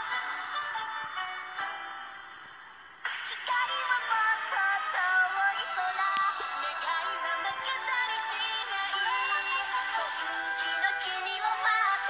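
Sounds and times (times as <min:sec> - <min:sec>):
pop song with female vocals: 0:03.1 - 0:12.0.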